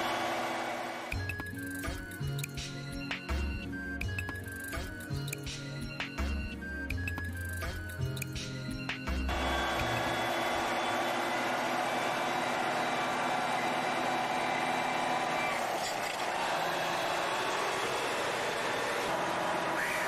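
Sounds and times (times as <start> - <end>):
truck engine droning: 0.0 - 5.2, 6.2 - 20.0.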